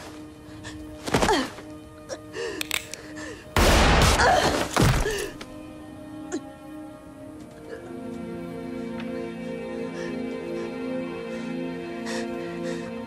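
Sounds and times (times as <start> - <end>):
film score held notes: 0.0 - 13.0.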